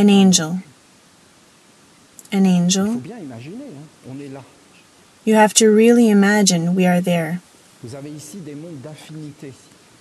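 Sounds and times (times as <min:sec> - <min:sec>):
man humming: 0:02.8 - 0:04.4.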